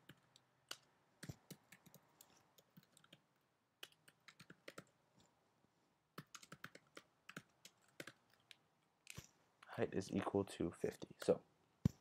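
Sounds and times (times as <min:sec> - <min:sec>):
typing on computer keyboard: 0:00.0 - 0:03.2, 0:03.8 - 0:05.0, 0:06.2 - 0:08.5.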